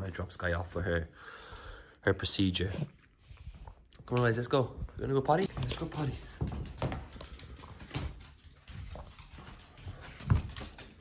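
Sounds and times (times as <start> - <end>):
dog claws clicking on wooden floor: 5.4 - 11.0.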